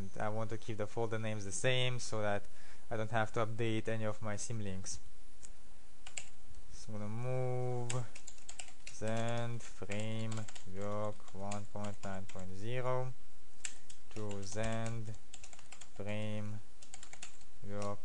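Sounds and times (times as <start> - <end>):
keyboard typing: 6.0 - 6.4, 7.8 - 12.5, 13.6 - 18.0
man's voice: 9.0 - 13.2, 16.0 - 16.6.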